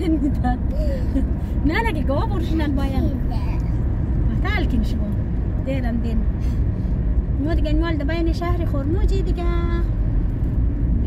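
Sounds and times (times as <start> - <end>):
car engine rumble in cabin: 0.0 - 11.0
road noise: 0.0 - 11.0.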